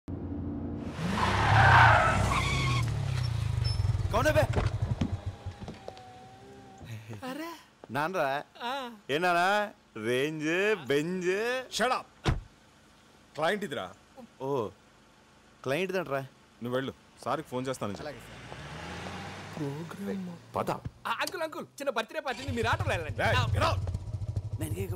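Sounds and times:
road noise rushing: 0.1s - 6.8s, 16.4s - 21.0s
motor vehicle running: 0.1s - 7.2s, 12.4s - 21.1s, 22.3s - 24.9s
tyres screeching: 1.0s - 6.9s
low engine rumble: 2.7s - 7.2s, 22.4s - 24.9s.

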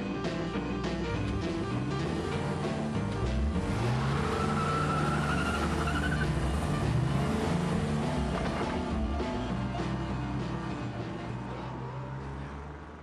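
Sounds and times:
background music: 0.0s - 13.0s
car engine revving: 1.2s - 13.0s
tyre squeal: 4.0s - 6.4s.

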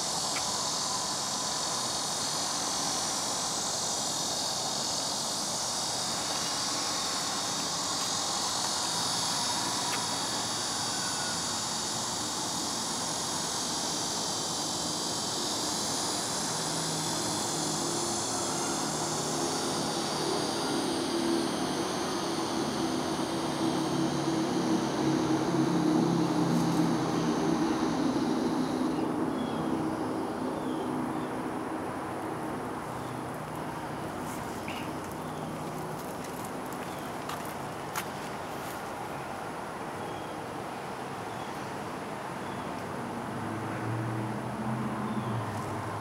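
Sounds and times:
low engine drone: 0.0s - 36.9s
high-pitched insect chorus: 0.0s - 46.0s.

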